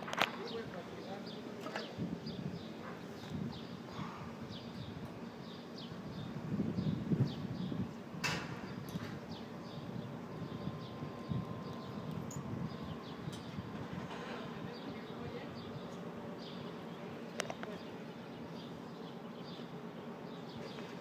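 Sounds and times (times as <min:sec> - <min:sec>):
outdoor ambience: 0:00.0 - 0:21.0.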